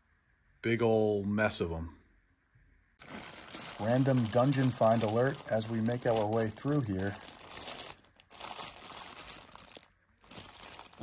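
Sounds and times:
plastic bag crinkling: 3.0 - 11.0.

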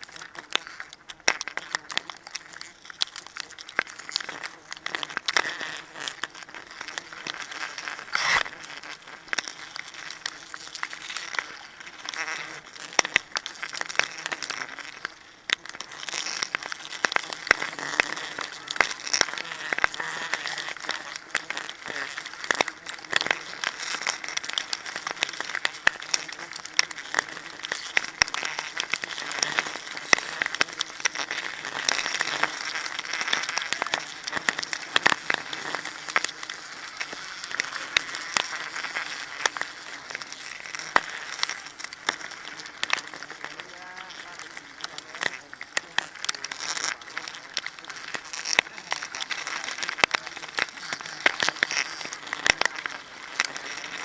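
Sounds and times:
leaves and bark rustling: 0.0 - 54.0
small clicks and snaps: 0.0 - 54.0.

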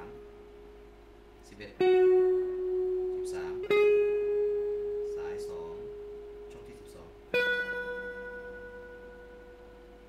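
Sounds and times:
clean electric guitar notes: 0.0 - 10.0.

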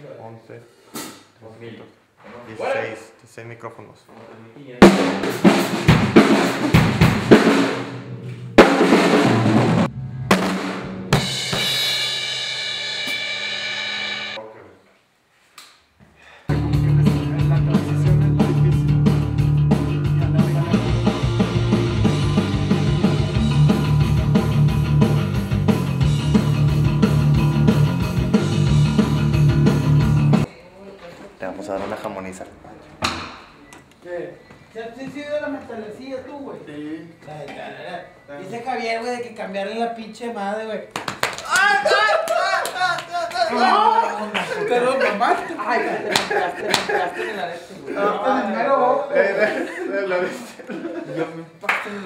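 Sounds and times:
acoustic drum kit hits: 4.8 - 14.4
rock music with heavy bass: 16.5 - 30.5.

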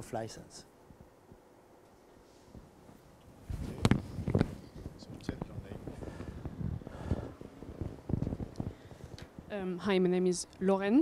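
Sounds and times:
microphone handling knocks: 3.5 - 9.5.

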